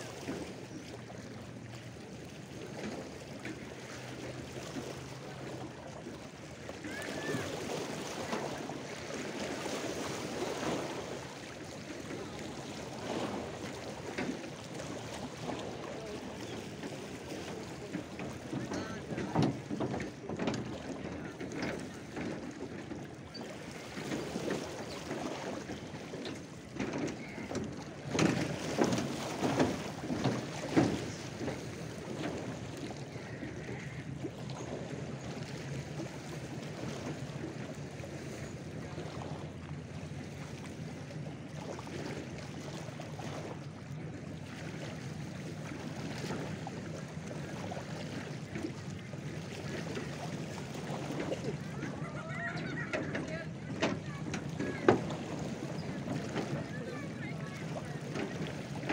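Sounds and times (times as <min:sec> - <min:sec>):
waves lapping and splashing: 0:00.0 - 0:58.9.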